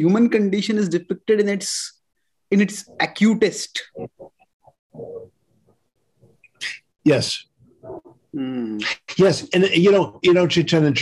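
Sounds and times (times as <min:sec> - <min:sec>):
man talking: 0:00.0 - 0:04.3, 0:06.5 - 0:07.5, 0:08.4 - 0:11.0.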